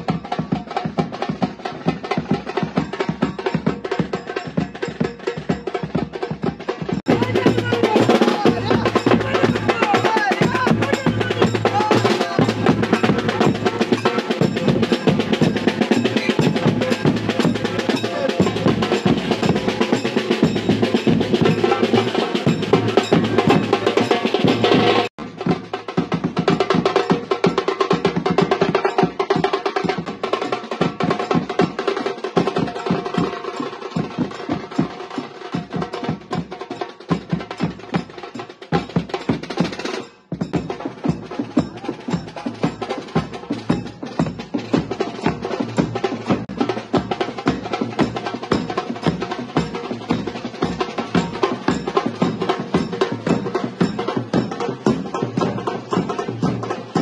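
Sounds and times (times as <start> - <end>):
dhol drum beats: 0.0 - 57.0
fast tasha drum roll: 0.0 - 57.0.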